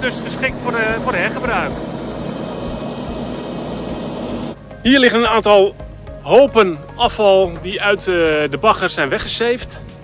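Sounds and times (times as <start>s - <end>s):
low engine hum: 0.0s - 4.7s.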